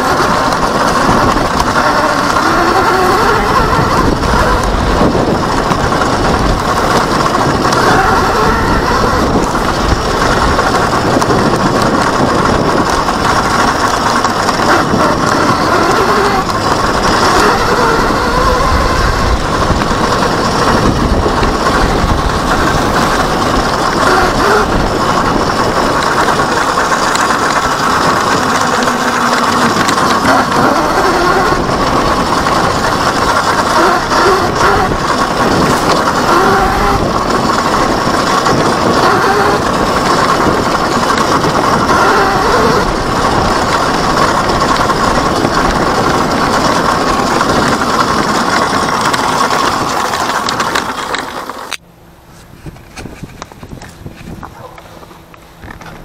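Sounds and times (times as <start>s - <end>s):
electric motor whine: 0.0s - 51.8s
bike rattling and knocking: 0.0s - 56.0s
wind and tyre noise: 0.0s - 56.0s.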